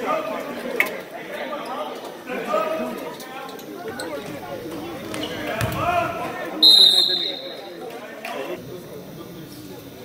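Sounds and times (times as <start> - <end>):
referee whistle blast: 6.6 - 7.7.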